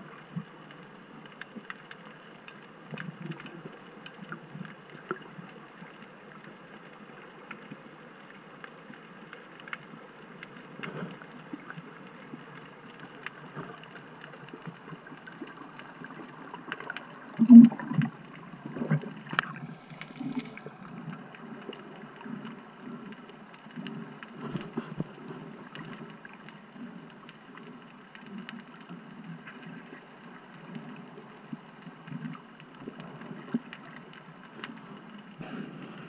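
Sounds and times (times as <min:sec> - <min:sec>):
faint clicks and crackles: 0:00.0 - 0:36.0
muffled underwater water rush: 0:00.0 - 0:36.0.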